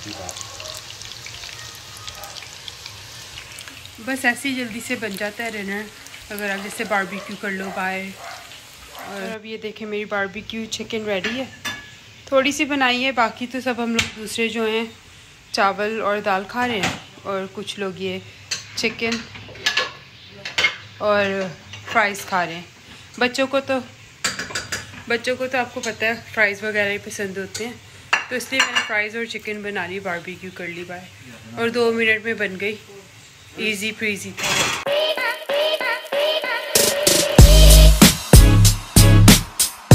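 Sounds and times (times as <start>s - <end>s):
fries sizzling in oil: 0.0s - 39.9s
dishes and cutlery clinking: 18.5s - 20.8s.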